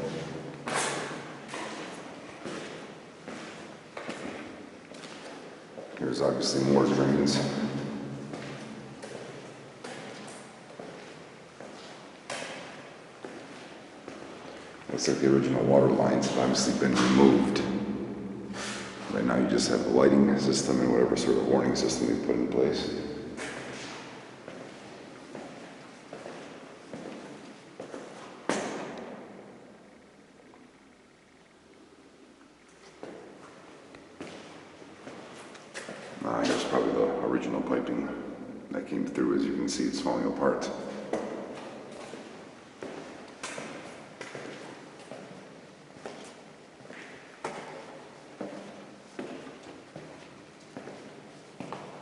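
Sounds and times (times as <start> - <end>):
footsteps on hard floor: 0.0 - 6.0, 8.2 - 14.7, 23.4 - 28.7
footsteps on concrete floor: 0.0 - 17.6, 20.7 - 29.4, 32.7 - 37.0, 40.7 - 52.0.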